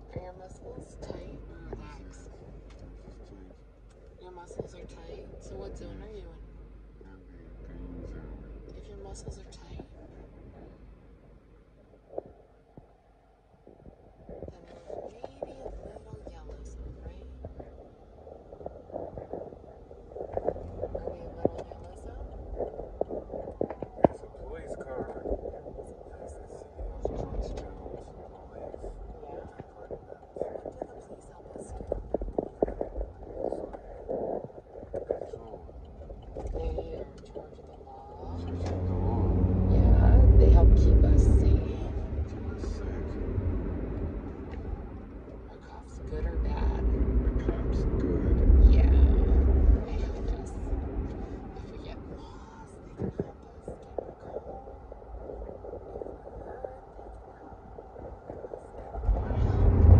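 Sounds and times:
car engine rumble: 0.0s - 59.9s
road noise inside car: 0.0s - 59.9s.

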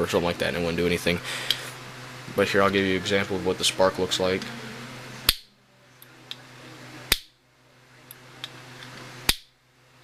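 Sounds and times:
piezo igniter snapping clicks: 5.3s - 5.5s, 7.1s - 7.4s, 9.2s - 9.5s.

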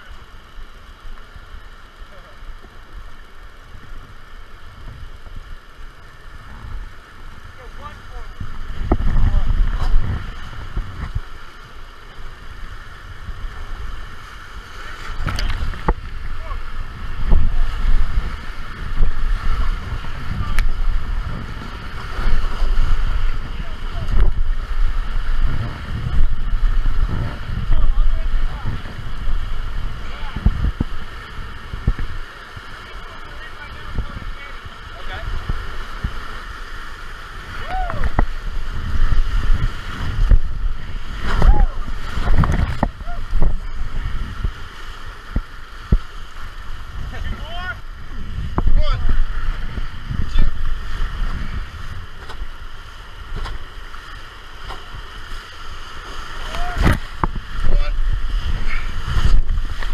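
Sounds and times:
water splashing: 0.0s - 59.9s
whitewater rapids rushing: 0.0s - 59.9s
wind buffeting microphone: 3.6s - 59.9s.

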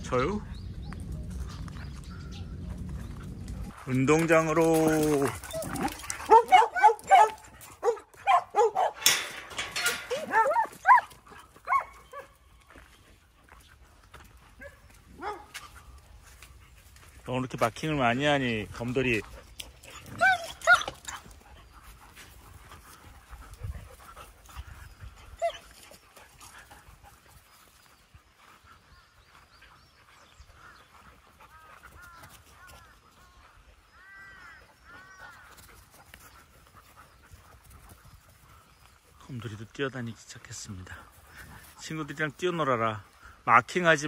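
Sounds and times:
dogs yipping: 4.8s - 12.6s, 14.6s - 16.0s, 19.6s - 21.7s, 22.8s - 26.0s
dogs whining: 5.4s - 8.0s.

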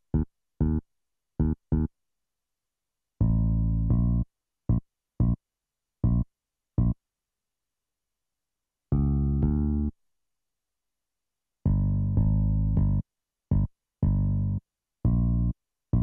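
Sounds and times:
synth bass notes: 1.4s - 1.9s, 3.2s - 5.4s, 6.0s - 6.2s, 9.0s - 9.9s, 11.7s - 16.0s.

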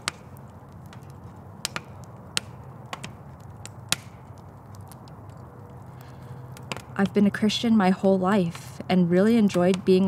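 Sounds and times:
fire crackling and popping: 0.0s - 10.0s
low steady rumble: 0.0s - 10.0s.

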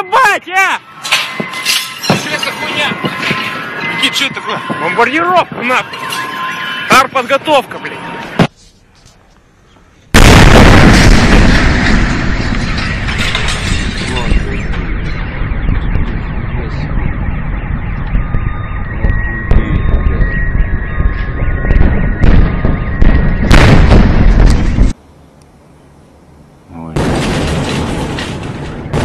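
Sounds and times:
car alarms: 0.8s - 8.4s, 14.9s - 24.8s
long rumble: 10.2s - 25.0s
loud blast: 10.2s - 25.0s.

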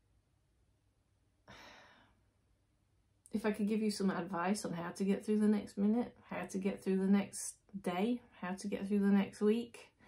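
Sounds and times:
woman breathing softly: 1.4s - 2.3s.

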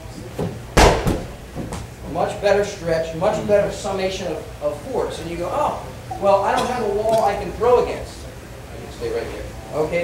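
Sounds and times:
ball thudding against wall: 0.4s - 1.9s.

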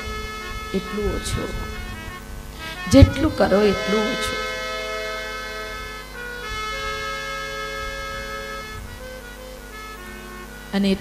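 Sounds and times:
harmonium chord: 0.0s - 11.0s.

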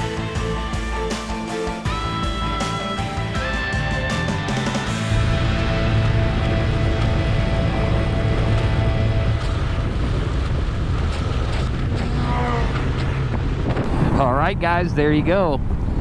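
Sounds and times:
background music: 0.0s - 10.1s
motorcycle engine running: 4.4s - 13.8s
wind buffeting microphone: 5.1s - 16.0s.

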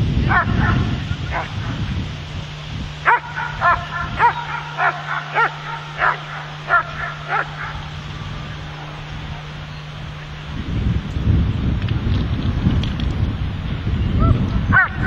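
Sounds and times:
dog barking: 0.3s - 1.8s, 3.0s - 8.0s, 14.2s - 15.0s.

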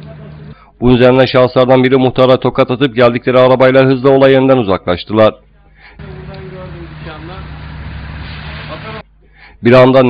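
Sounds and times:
traffic noise: 6.0s - 9.0s
low hum: 6.0s - 9.2s.

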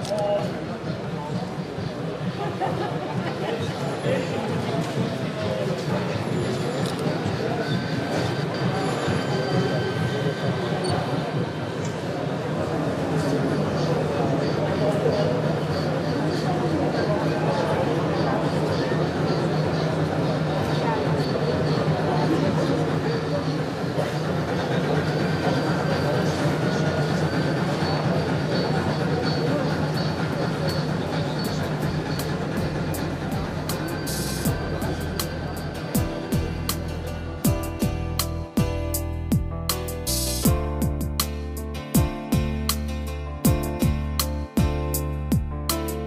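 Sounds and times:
model train running on track: 0.0s - 37.4s
people talking: 0.0s - 37.9s.

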